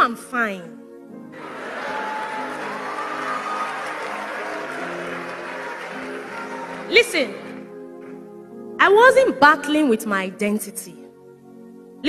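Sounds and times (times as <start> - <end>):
soft keyboard music: 0.0 - 12.0
audience applauding: 1.4 - 8.2.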